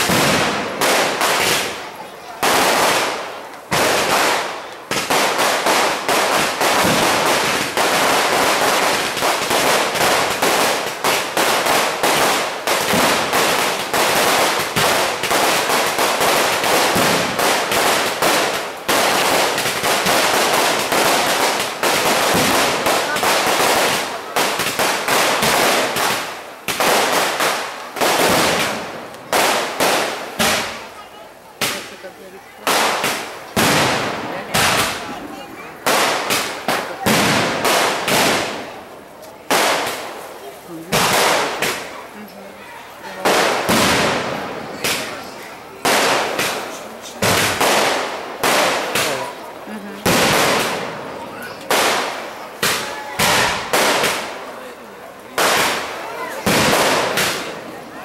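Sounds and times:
firecrackers cracking: 0.0s - 58.0s.

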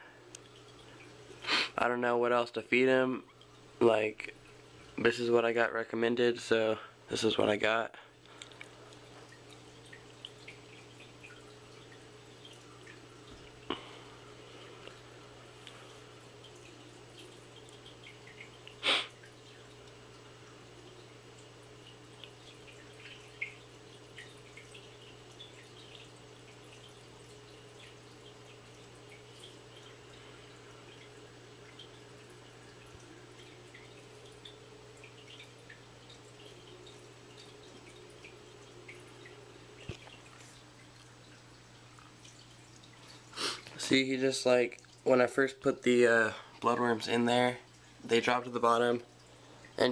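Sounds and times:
low pump hum: 0.0s - 49.9s
water dripping and trickling: 0.0s - 49.9s.

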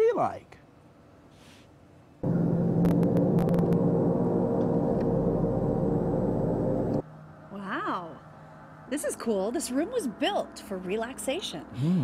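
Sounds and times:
large gongs ringing: 2.2s - 7.0s.

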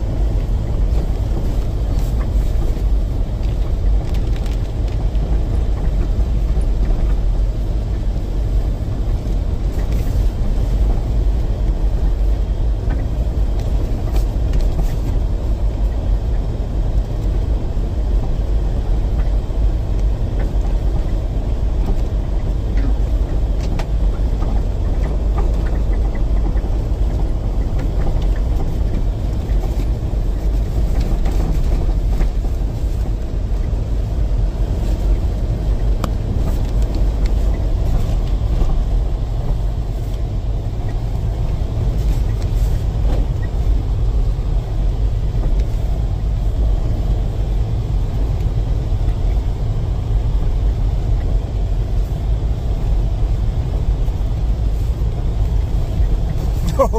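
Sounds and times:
vehicle driving on rough road: 0.0s - 56.9s.

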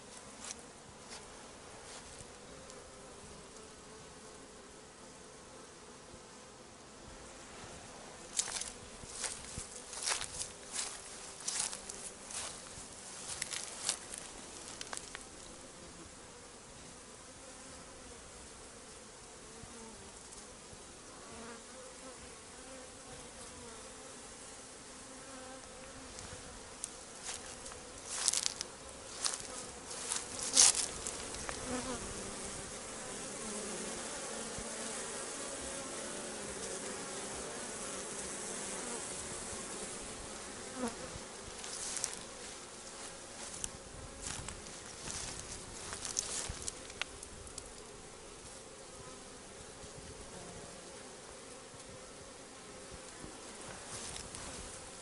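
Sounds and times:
honeybees buzzing: 0.0s - 55.0s.

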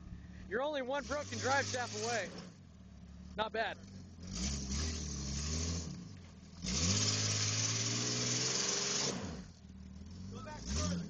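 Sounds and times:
engine revving hard: 0.9s - 2.6s, 3.2s - 11.0s.

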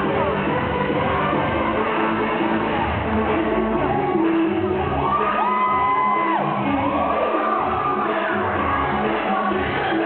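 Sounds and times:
dance music over speakers: 0.0s - 10.0s
crowd whooping and cheering: 3.8s - 10.0s.

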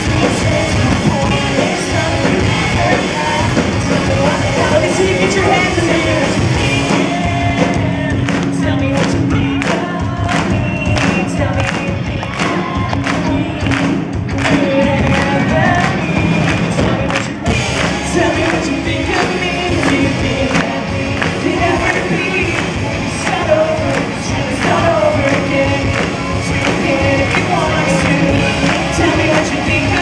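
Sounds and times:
male singer: 0.0s - 30.0s
pop band steady beat: 0.0s - 30.0s.

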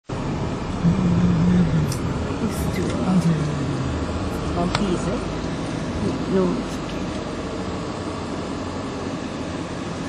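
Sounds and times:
road and engine noise: 0.0s - 10.0s
low drone: 0.1s - 10.0s.

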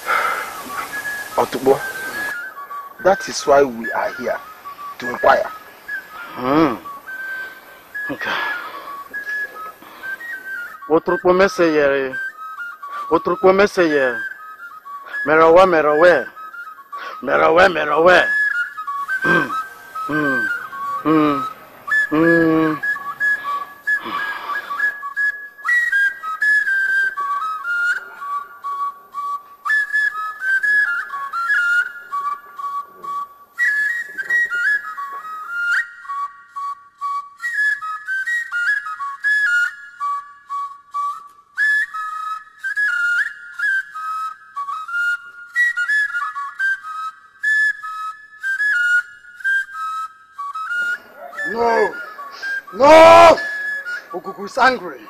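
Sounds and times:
whistled flute-like melody: 0.0s - 55.0s.

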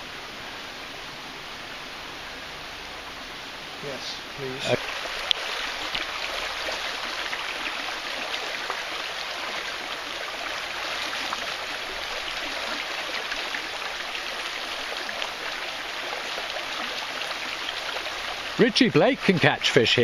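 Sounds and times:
river rushing over rocks: 0.0s - 20.0s.

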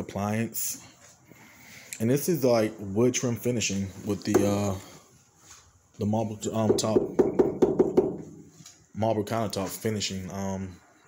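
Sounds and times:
knocking on kitchen countertop: 6.7s - 8.3s.

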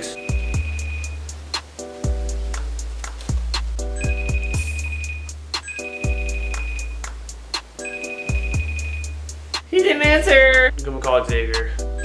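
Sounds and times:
beat with deep bass: 0.0s - 12.0s.

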